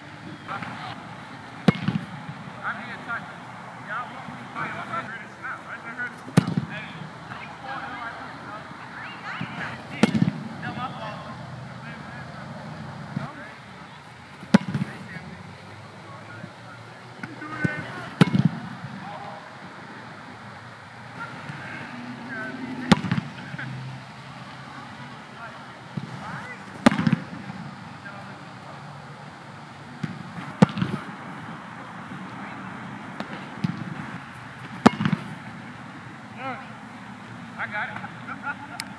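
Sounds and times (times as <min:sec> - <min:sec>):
football kicks thumping: 0:01.7 - 0:02.1, 0:26.8 - 0:27.3, 0:30.0 - 0:31.0, 0:34.8 - 0:35.3.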